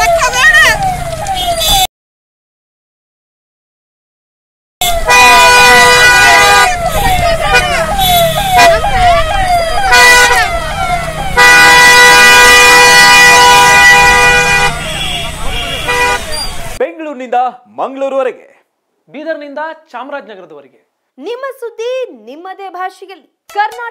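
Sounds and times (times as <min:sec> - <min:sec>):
police siren wailing: 0:00.0 - 0:01.9, 0:04.8 - 0:16.8
long horn blasts: 0:04.8 - 0:16.4.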